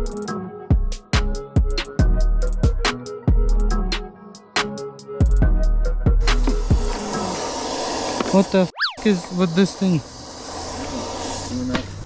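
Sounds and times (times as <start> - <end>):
compressed air hissing: 6.4 - 12.0.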